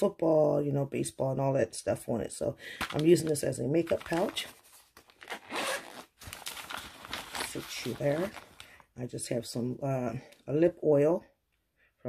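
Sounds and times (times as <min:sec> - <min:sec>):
zipper pulled open: 0:05.2 - 0:06.6.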